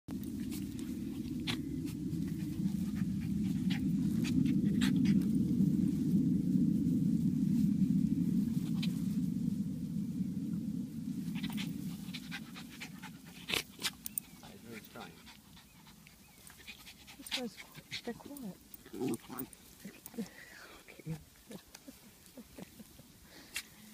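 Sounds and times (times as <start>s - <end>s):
dog grumbling low: 18.8s - 19.6s.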